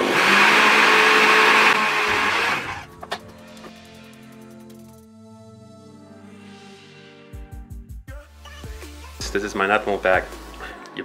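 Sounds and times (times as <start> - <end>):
blender running: 0.0 - 2.9
faint background music: 2.8 - 11.0.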